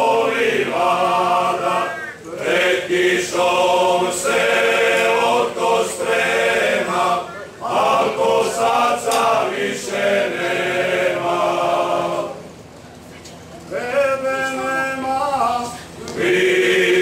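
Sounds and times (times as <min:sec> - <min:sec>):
men singing unaccompanied: 0:00.0 - 0:12.4, 0:13.7 - 0:17.0.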